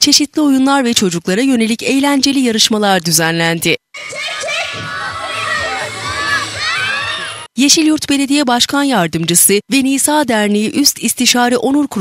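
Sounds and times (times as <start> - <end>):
children shouting: 4.0 - 7.5.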